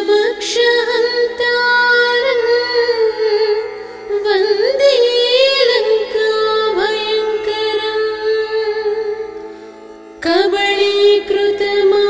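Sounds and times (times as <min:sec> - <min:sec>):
woman singing: 0:00.0 - 0:09.4, 0:10.2 - 0:12.0.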